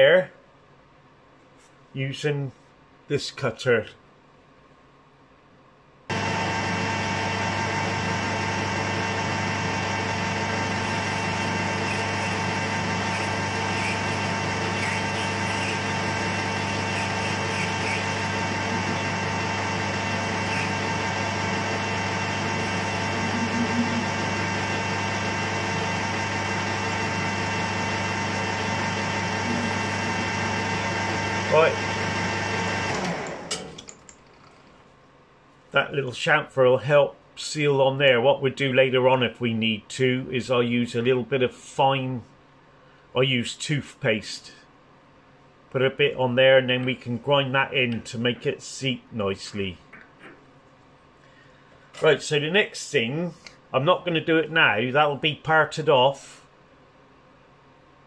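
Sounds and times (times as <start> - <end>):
metal lathe humming and whining: 6.1 - 33.9.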